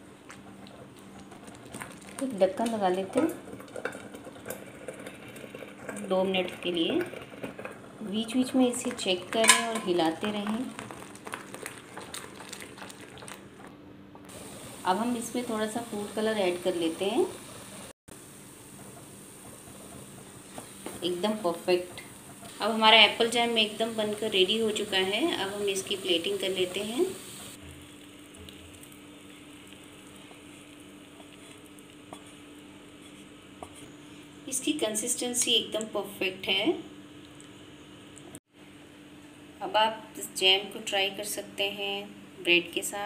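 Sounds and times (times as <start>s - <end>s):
jam bubbling in a pan: 0.0s - 35.9s.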